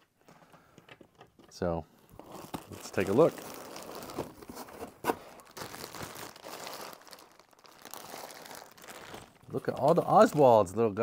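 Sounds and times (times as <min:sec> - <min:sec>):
plastic bag crinkling: 0:01.1 - 0:10.8.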